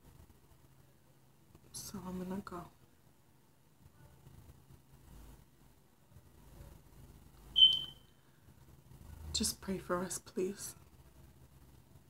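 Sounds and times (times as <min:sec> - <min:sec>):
high-pitched electronic beep: 0:07.6 - 0:08.0.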